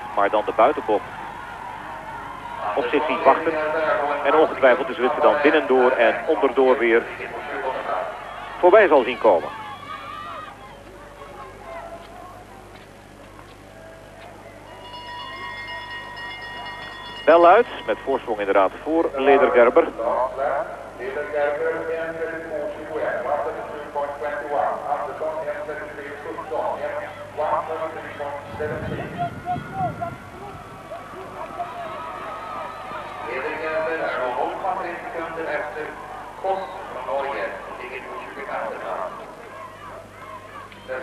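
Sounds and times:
faint crowd noise: 0:00.0 - 0:41.0
steady low hum: 0:00.0 - 0:41.0
bell ringing: 0:14.6 - 0:18.5.

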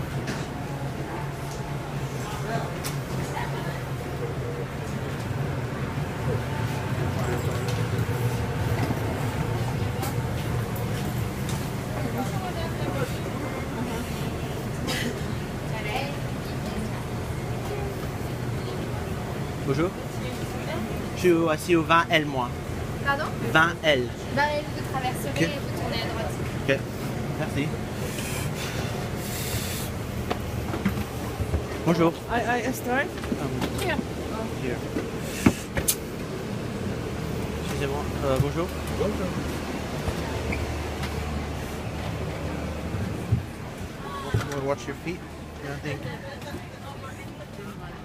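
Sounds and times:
low machinery hum: 0:00.0 - 0:48.0.

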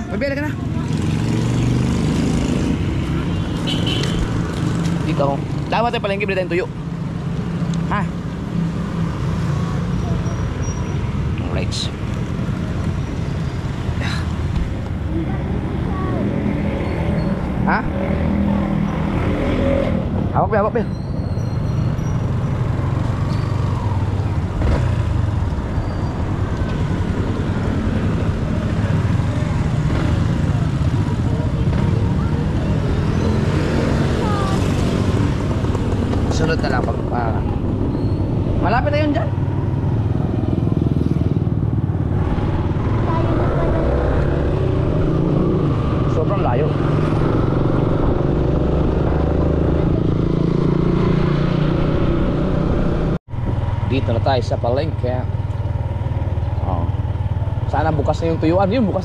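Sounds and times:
road noise: 0:00.0 - 0:59.0
motorcycle engine rumbling: 0:20.0 - 0:59.0.

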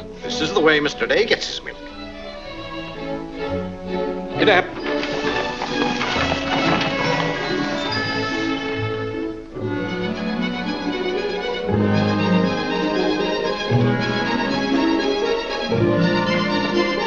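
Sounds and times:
orchestral film score: 0:00.0 - 0:17.0.

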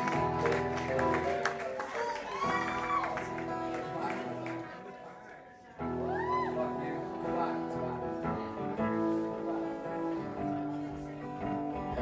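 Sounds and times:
guitar picking slow notes: 0:00.0 - 0:01.4, 0:05.8 - 0:12.0.

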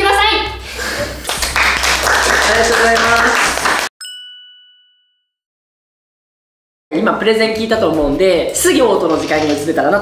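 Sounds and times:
bell-like ding: 0:04.0 - 0:05.4.

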